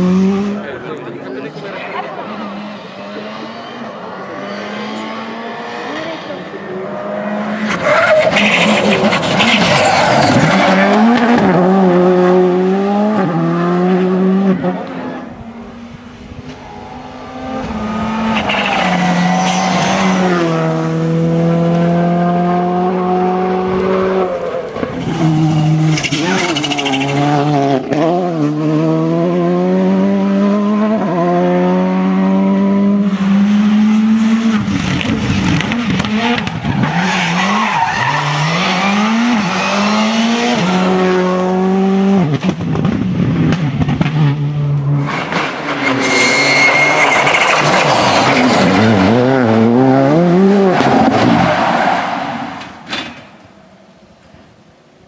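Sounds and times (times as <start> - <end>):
rally car engines revving: 0.0 - 53.5
tyre squeal: 17.7 - 20.5, 24.4 - 27.4, 45.5 - 49.1.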